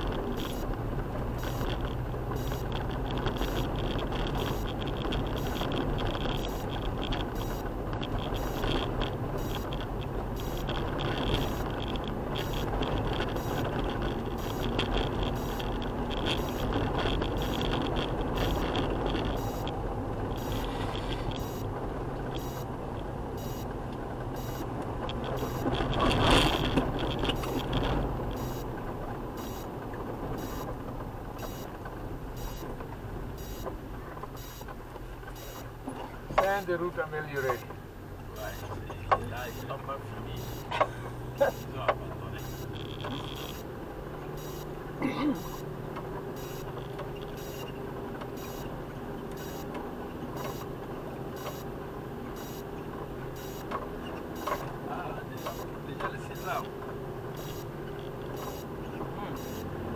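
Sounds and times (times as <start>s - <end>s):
tyre and road rumble: 0.0s - 59.9s
vehicle engine drone: 0.0s - 59.9s.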